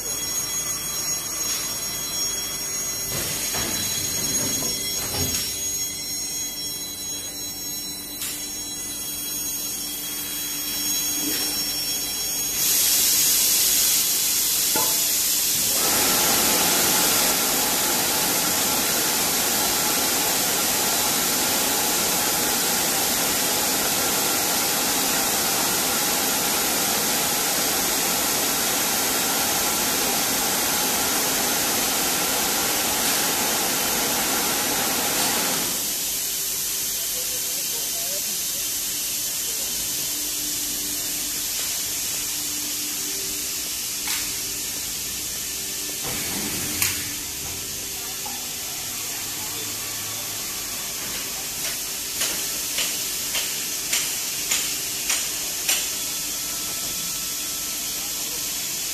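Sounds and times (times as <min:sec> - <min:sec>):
loud air hiss: 0:12.4 - 0:23.2.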